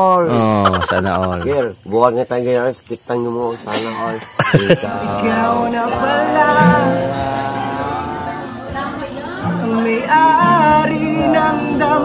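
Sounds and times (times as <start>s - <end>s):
man making wordless syllables: 0.2s - 1.8s.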